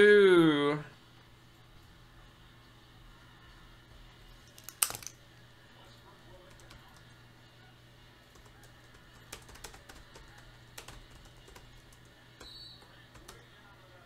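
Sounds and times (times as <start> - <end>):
computer keyboard typing: 6.4 - 7.1, 8.3 - 13.6.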